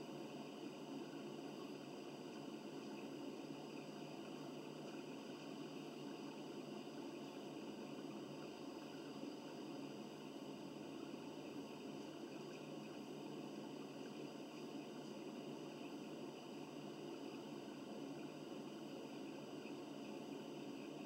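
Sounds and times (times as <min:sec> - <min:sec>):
faint hiss and hum: 0:00.0 - 0:21.0.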